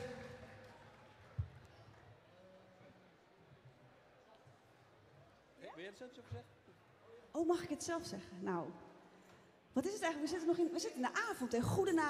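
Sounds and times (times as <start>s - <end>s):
man's voice through speakers: 0.0s - 0.8s.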